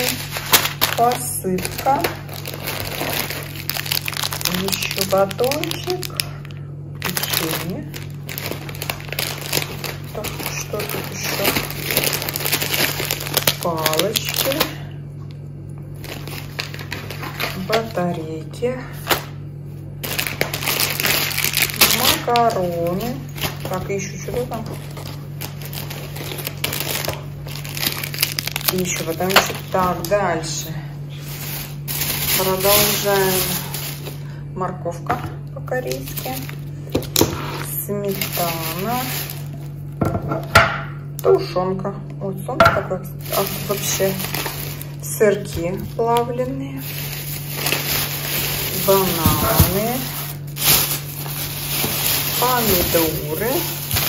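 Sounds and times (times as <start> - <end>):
plastic packaging crinkling: 0.0 - 18.2, 18.9 - 34.4, 35.7 - 40.0, 43.1 - 54.0
steady low hum: 0.0 - 54.0.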